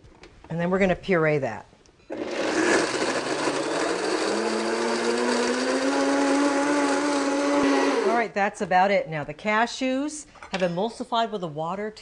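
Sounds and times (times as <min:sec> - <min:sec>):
blender motor running: 0:02.1 - 0:08.3.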